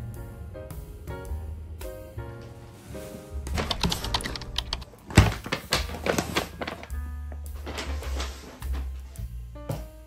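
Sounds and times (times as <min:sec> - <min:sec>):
soft background music: 0:00.0 - 0:10.0
paper bag crinkling: 0:03.6 - 0:09.0.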